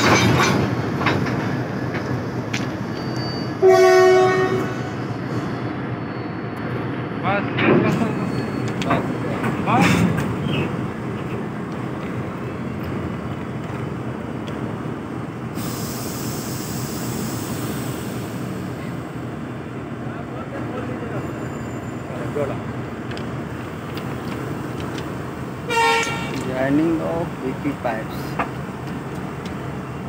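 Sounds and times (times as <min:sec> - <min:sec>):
train running noise: 0:00.0 - 0:30.0
train horn toot: 0:03.6 - 0:05.0, 0:25.7 - 0:26.4
rushing hiss: 0:15.5 - 0:18.9.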